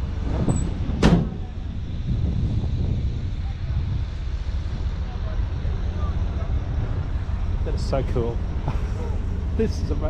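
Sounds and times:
low rumble: 0:00.0 - 0:10.0
truck door slamming: 0:00.2 - 0:01.6.

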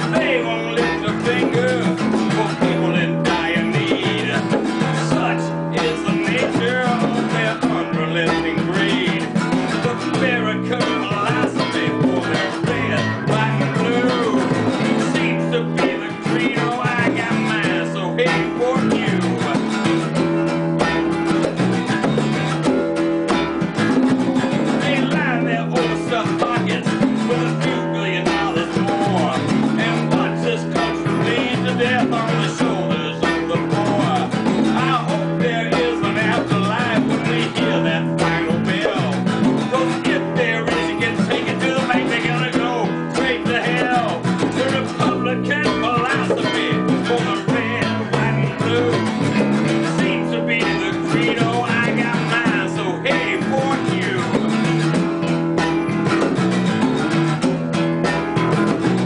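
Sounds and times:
acoustic guitar strummed: 0:00.0 - 0:59.0
djembe hand drum: 0:00.0 - 0:59.0
electric guitar: 0:00.0 - 0:59.0.

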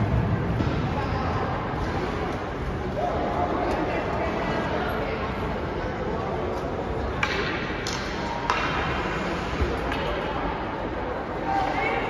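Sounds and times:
ice arena din: 0:00.0 - 0:12.0.

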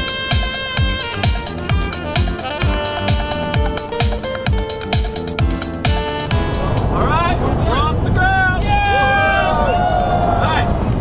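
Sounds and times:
electronic music with kick beat: 0:00.0 - 0:06.9, 0:08.6 - 0:09.7
people's voices: 0:06.5 - 0:11.0.

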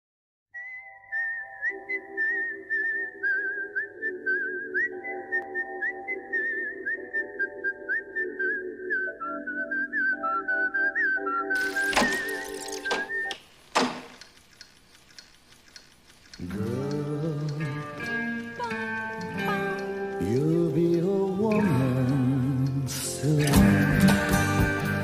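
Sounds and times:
whistled melody with trills: 0:00.5 - 0:13.4.

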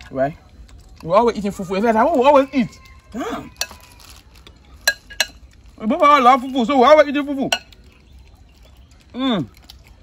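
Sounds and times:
metal spoons clinking on bowl: 0:04.8 - 0:05.4, 0:07.5 - 0:07.7.

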